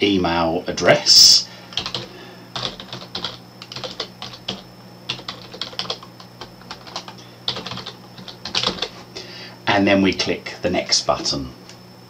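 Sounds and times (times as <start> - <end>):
computer keyboard typing: 1.7 - 9.0.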